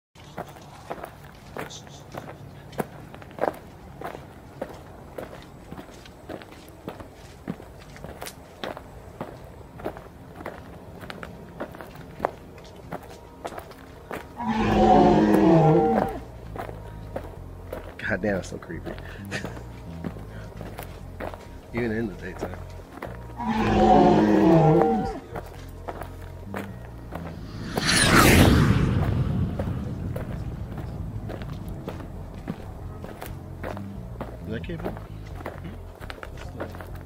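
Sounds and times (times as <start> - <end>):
footsteps on wood chips: 0.2 - 14.4, 29.4 - 37.0.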